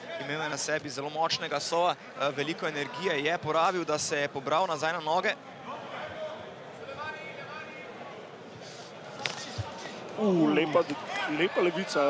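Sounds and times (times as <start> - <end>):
crowd shouting: 9.2 - 12.0.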